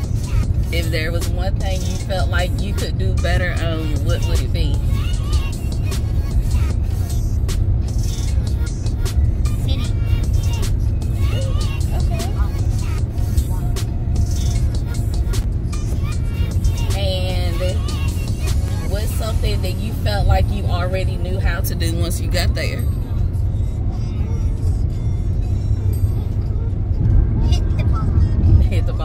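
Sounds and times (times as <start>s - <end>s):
background music with a beat: 0.0s - 19.6s
road noise in car cabin: 0.0s - 29.0s.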